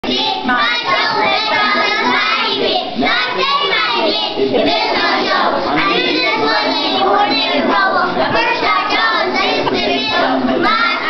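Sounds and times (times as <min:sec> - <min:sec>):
young children singing: 0:00.0 - 0:11.0.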